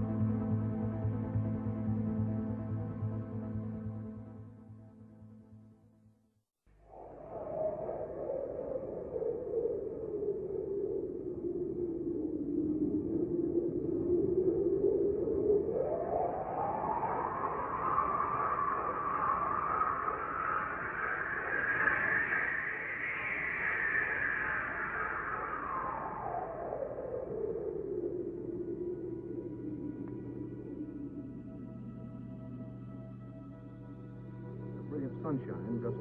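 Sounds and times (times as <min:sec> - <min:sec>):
eerie synthesized drone: 0:16.2 - 0:36.0.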